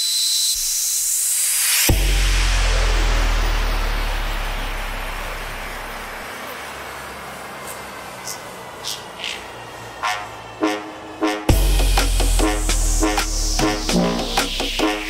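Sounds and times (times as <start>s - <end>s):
sweeping effects: 0.9s - 6.6s, 9.7s - 15.0s
electronic dance music: 1.8s - 6.2s, 10.0s - 15.0s
horn-like stabs: 1.9s - 6.2s, 10.0s - 15.0s.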